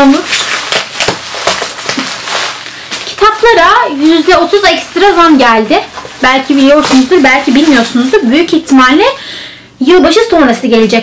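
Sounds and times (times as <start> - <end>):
bubble wrap crinkling: 0.0 - 9.2.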